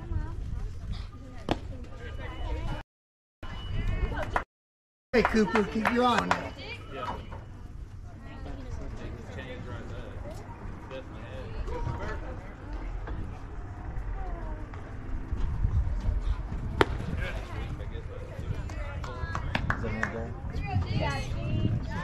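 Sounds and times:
wind rumble on microphone: 0:00.0 - 0:01.2, 0:11.6 - 0:22.0
background chatter: 0:05.2 - 0:22.0
baseball hitting catcher's mitt: 0:16.8 - 0:17.3.

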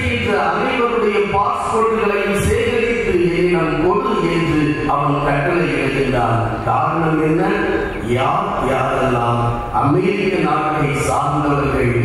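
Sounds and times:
man chanting a prayer: 0:00.0 - 0:12.0.

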